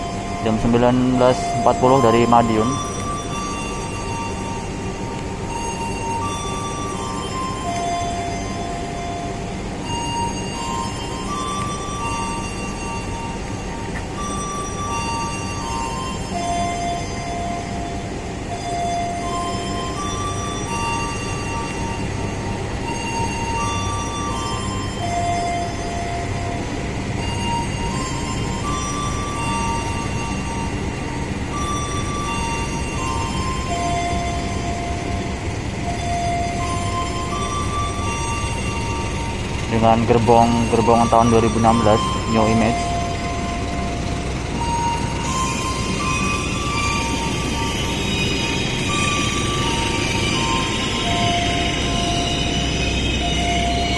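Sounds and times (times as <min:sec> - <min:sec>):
simple stepped melody: 0:00.0 - 0:53.9
train rumbling: 0:00.0 - 0:53.9.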